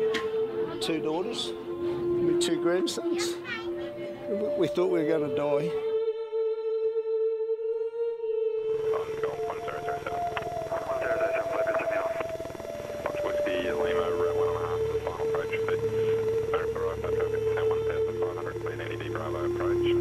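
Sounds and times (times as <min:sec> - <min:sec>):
music score of long held notes: 0:00.0 - 0:20.0
broken radio-like voices: 0:08.8 - 0:20.0.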